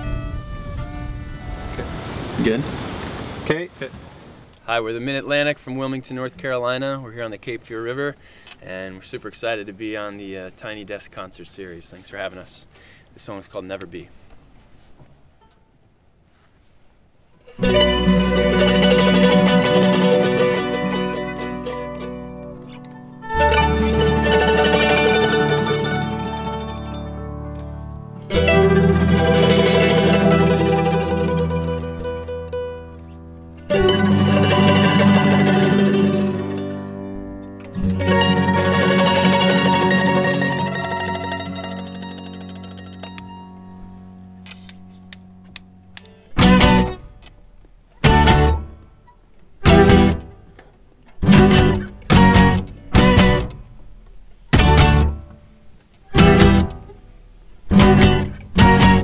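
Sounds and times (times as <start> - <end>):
acoustic string band playing: 0.0 - 1.9, 17.5 - 48.9, 49.6 - 59.0
guitar strum: 17.5 - 50.6, 51.2 - 53.8, 54.5 - 55.4, 56.1 - 57.0, 57.7 - 59.0.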